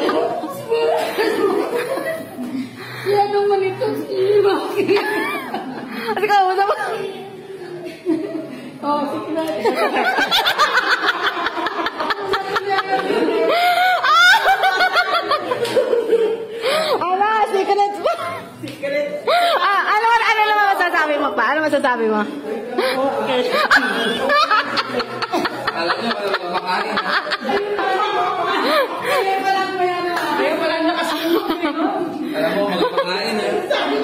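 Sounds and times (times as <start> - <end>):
people laughing and crying: 0.0 - 21.2, 22.4 - 34.0.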